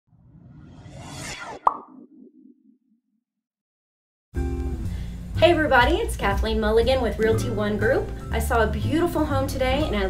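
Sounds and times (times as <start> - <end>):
sharp pop: 1.5 - 2.1.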